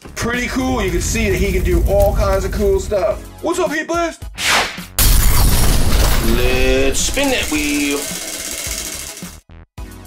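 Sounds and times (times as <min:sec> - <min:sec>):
prize wheel flapper clicking: 0:07.2 - 0:09.4.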